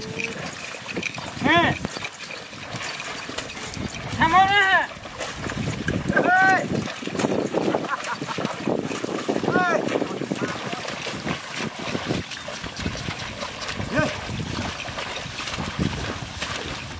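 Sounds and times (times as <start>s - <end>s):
plough splashing through mud: 0.0s - 16.9s.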